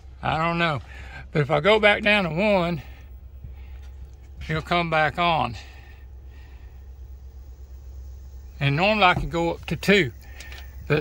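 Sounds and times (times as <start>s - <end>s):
roof vent fan humming: 0.0s - 11.0s.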